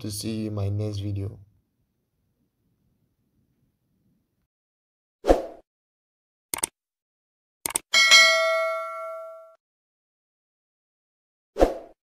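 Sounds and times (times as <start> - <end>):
quick clicks: 6.5 - 6.8, 7.6 - 7.9
bell ding: 7.9 - 9.6.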